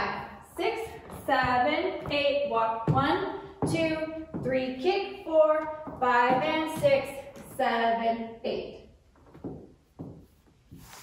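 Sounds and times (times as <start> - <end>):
boots stepping on hardwood floor: 0.9 - 7.6, 9.2 - 11.0.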